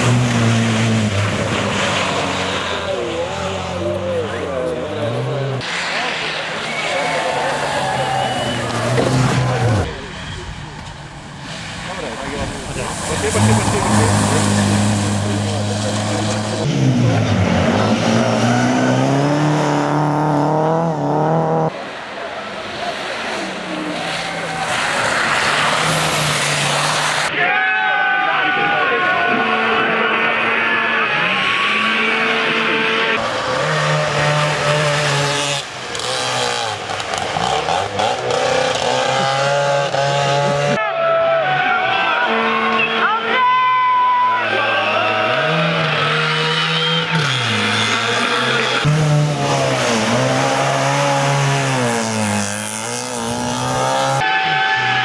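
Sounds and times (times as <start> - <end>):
rally car engines revving past: 0.0 - 27.4, 29.0 - 43.0, 44.2 - 55.0.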